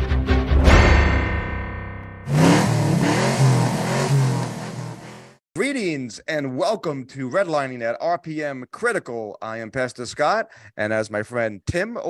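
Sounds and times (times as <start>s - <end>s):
car engine revving hard: 2.3s - 5.4s.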